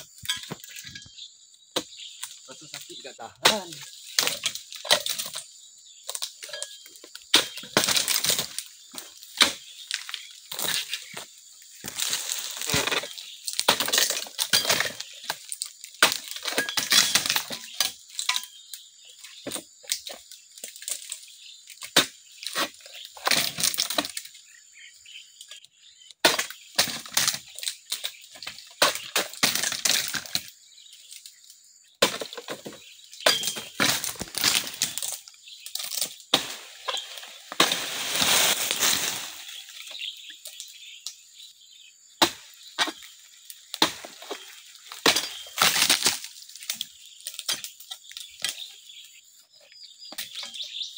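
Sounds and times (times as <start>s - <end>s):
fronds rustling and crashing: 7.4s - 18.4s, 32.0s - 41.2s, 42.2s - 48.7s.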